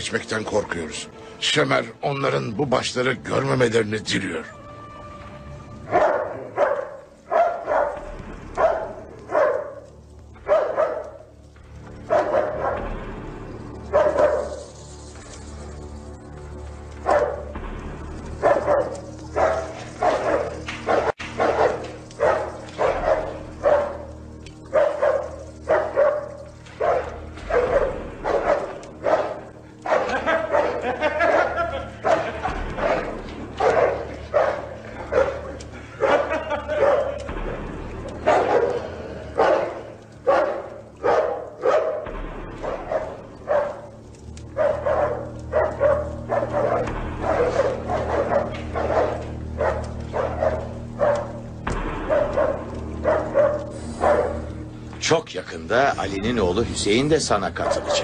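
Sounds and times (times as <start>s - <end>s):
large dog barking: 5.8s - 14.8s, 16.8s - 54.7s, 57.3s - 58.0s.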